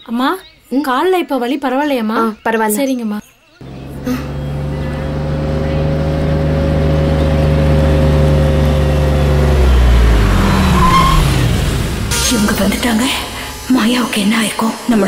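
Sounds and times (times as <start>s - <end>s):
car engine humming: 3.6s - 15.0s.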